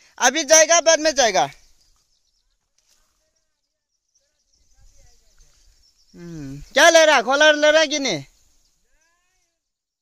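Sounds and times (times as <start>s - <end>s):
person calling out: 6.2s - 7.0s.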